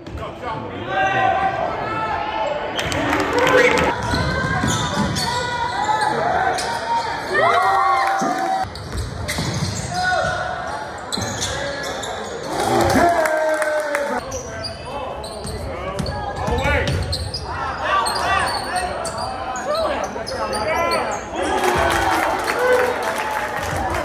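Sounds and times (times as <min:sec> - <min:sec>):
shouts and chatter: 0:00.7 - 0:08.7, 0:11.8 - 0:14.2.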